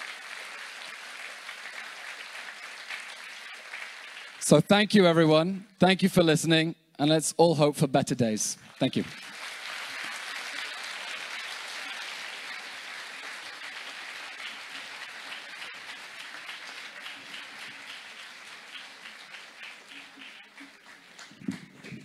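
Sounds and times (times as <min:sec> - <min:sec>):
audience applause: 0:00.0 - 0:04.6, 0:08.7 - 0:22.0.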